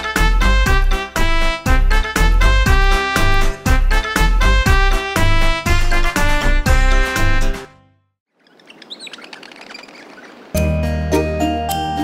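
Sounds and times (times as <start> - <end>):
soft outdoor ambience: 8.3 - 12.0
bird chirps: 8.4 - 10.6.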